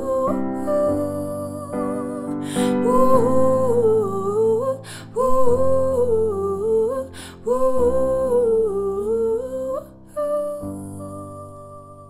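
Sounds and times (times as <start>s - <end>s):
woman singing wordless phrases: 0.0s - 12.0s.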